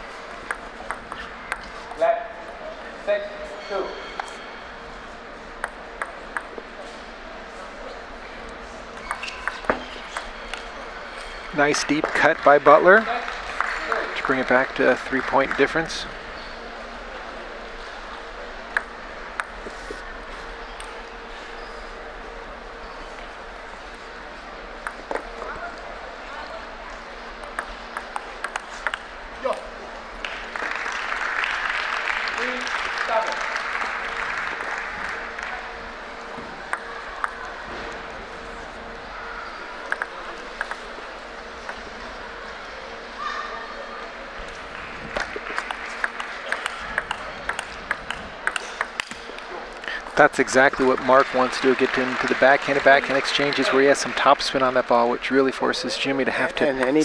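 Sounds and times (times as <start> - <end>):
table tennis ball clicking: 0.4 - 1.7, 5.6 - 6.6, 9.0 - 10.7, 27.4 - 29.6, 36.7 - 37.4, 39.8 - 40.9, 45.2 - 49.5
crowd applause: 11.4 - 16.2, 30.1 - 40.8, 44.5 - 57.0.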